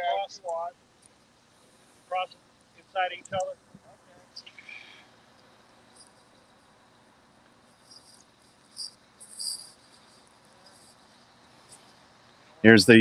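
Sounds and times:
faint high-pitched chirps: 4.3s - 5.1s, 7.6s - 12.6s.

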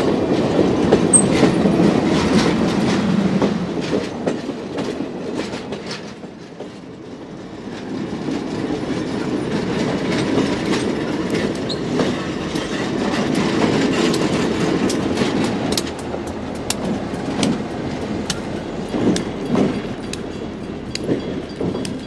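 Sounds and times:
train wheels clicking over rail joints: 0.0s - 22.0s.

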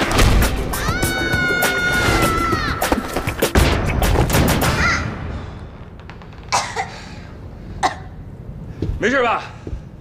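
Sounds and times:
person coughing: 6.5s - 7.0s, 7.8s - 8.1s.

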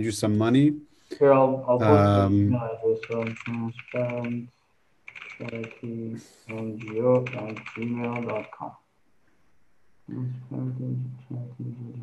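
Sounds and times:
man speaking: 0.0s - 4.5s, 5.4s - 8.8s
typing on keyboard: 3.0s - 4.5s, 5.1s - 8.7s.

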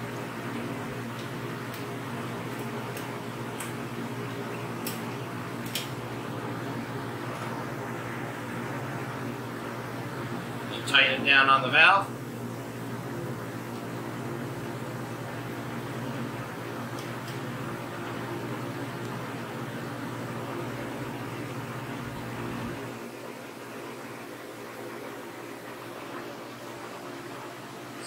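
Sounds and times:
refrigeration fans humming: 0.0s - 28.0s.

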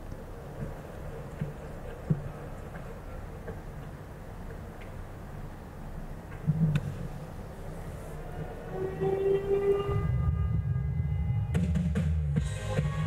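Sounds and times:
low rumble: 8.3s - 12.5s.

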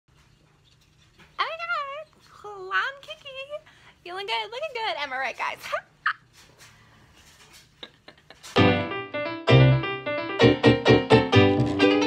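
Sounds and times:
faint room hum: 0.1s - 8.9s.

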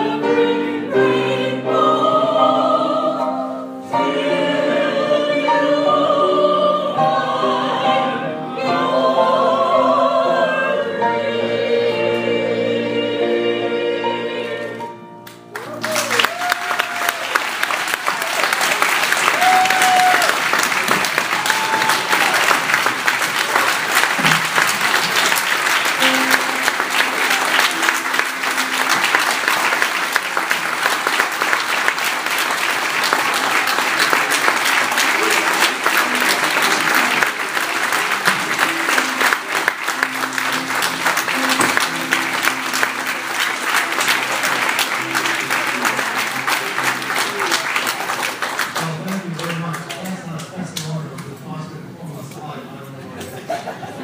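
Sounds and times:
audience applauding: 15.2s - 51.0s
short cheers: 15.5s - 18.6s, 19.2s - 20.5s, 21.3s - 22.6s.

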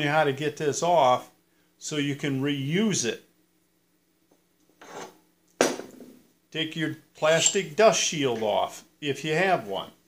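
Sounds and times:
hub knocking on workbench: 5.6s - 6.2s.

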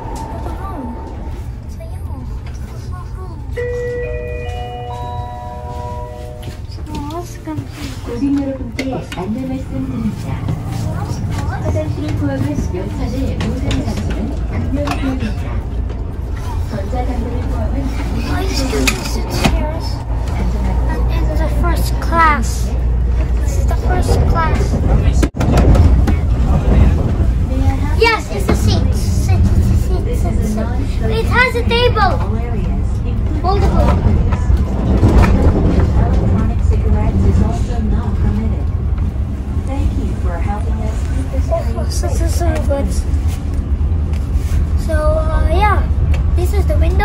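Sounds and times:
moving train rumble: 0.0s - 47.0s
announcement chime: 3.6s - 6.7s.

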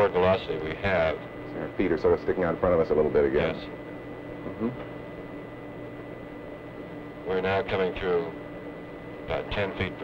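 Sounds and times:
steady hiss and hum: 0.0s - 10.0s.

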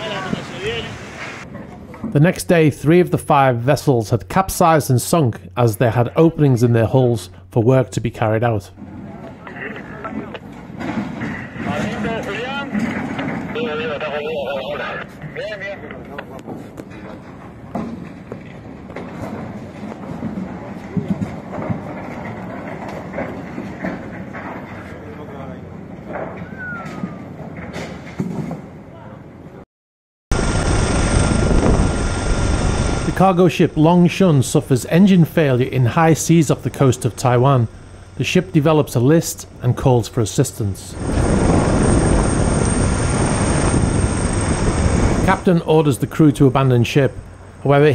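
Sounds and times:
people talking and calling out: 0.0s - 1.1s
helicopter rotor and engine rush: 30.3s - 47.9s
thin high whine: 30.3s - 47.9s.

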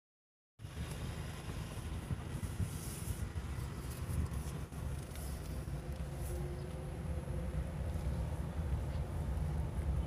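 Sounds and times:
car engine and tyres rumbling: 0.6s - 10.0s.

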